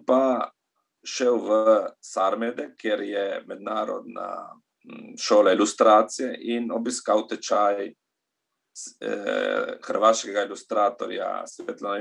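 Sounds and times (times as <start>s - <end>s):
man speaking: 0.0s - 0.5s, 1.1s - 7.9s, 8.8s - 12.0s
man's drawn-out hesitation sound: 0.0s - 0.5s, 1.1s - 7.9s, 8.8s - 12.0s.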